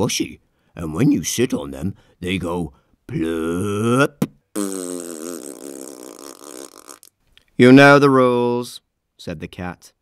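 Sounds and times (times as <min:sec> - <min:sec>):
person blowing raspberry: 0:03.2 - 0:07.2.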